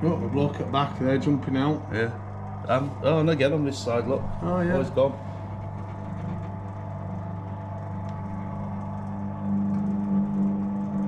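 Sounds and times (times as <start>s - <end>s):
automaton mechanism humming: 0.0s - 11.0s.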